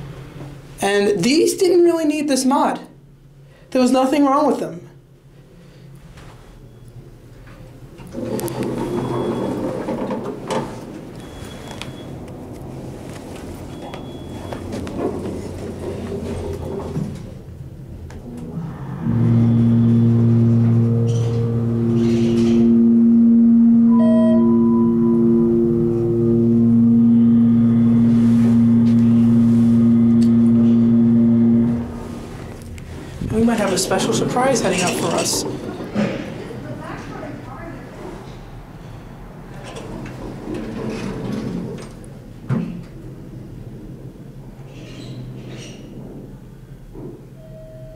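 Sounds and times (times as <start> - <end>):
elevator pump motor humming: 18.1 - 35.3
rumbling: 18.1 - 36.0
short high beeps: 19.5 - 31.8
brief chime: 23.7 - 30.8.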